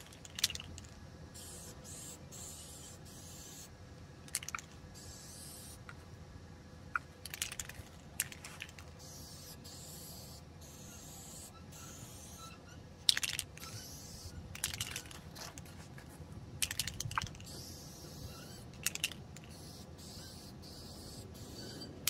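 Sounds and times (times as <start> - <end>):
spray-paint can hissing: 1.4 - 3.7, 4.4 - 5.8, 9.0 - 12.4, 13.6 - 15.2, 16.6 - 21.8.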